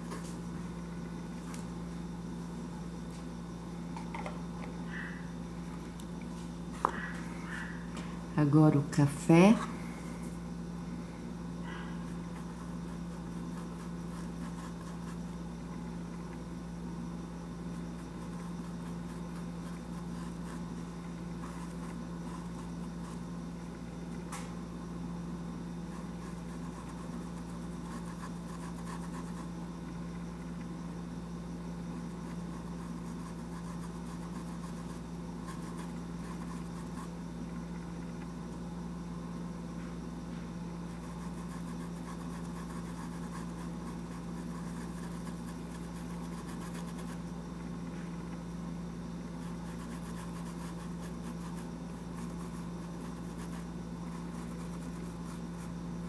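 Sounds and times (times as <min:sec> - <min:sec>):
low machine hum: 0:00.0 - 0:56.0.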